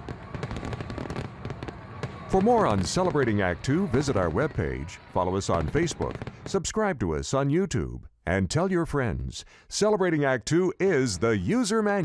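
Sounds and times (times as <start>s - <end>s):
fireworks crackling and popping: 0.0s - 6.8s.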